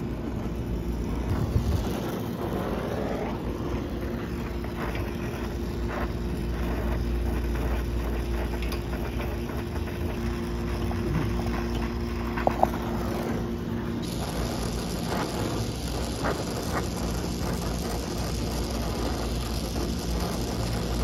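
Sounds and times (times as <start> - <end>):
low hum: 0.0 - 21.0
second hum tone: 0.0 - 21.0
torch burning with rumbling noise: 0.0 - 21.0.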